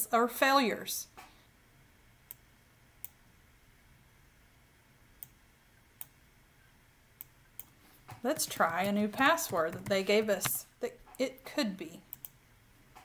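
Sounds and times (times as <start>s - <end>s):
computer mouse clicks: 12.1s - 12.4s.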